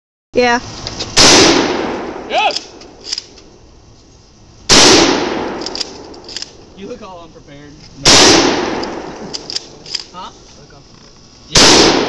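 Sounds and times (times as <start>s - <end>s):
loud gunshot with echo: 1.2s - 2.3s, 4.7s - 5.6s, 8.0s - 9.1s, 11.5s - 12.0s.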